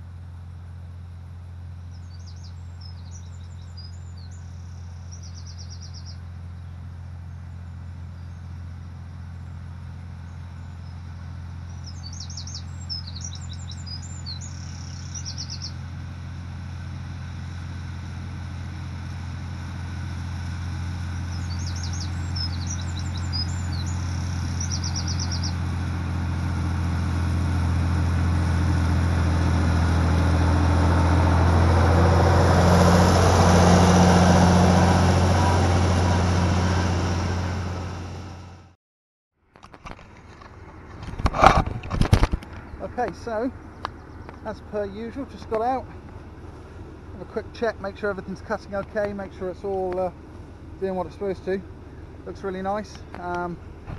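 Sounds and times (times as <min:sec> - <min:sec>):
tractor engine drone: 0:00.0 - 0:38.8, 0:39.5 - 0:53.9
mower cutting rushing noise: 0:01.6 - 0:38.7, 0:39.9 - 0:53.9
bird singing trilled phrase: 0:01.9 - 0:08.5, 0:11.6 - 0:15.8, 0:21.2 - 0:25.6.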